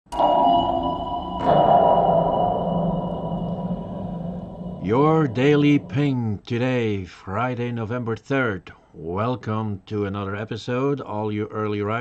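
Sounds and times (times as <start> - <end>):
electronic sonar pings: 0.1 - 6.2.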